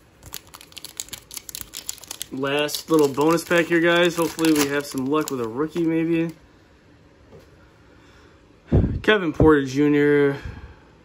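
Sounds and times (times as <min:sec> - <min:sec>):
plastic wrapper crinkling: 0:00.0 - 0:06.4.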